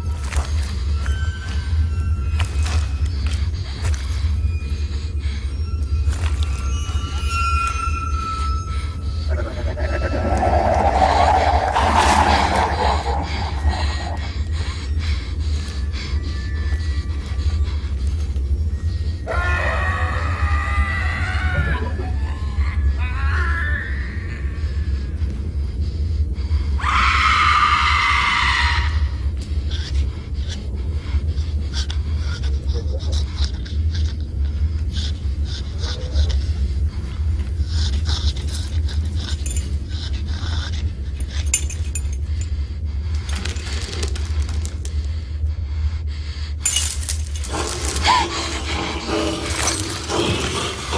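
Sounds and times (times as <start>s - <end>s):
eerie music: 0.0s - 50.9s
low rumbling drone: 0.0s - 50.9s.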